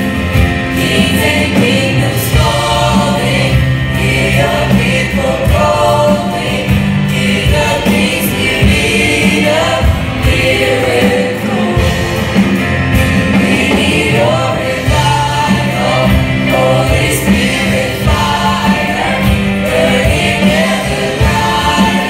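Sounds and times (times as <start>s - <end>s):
live band playing: 0.0s - 22.0s
youth choir singing: 0.0s - 22.0s.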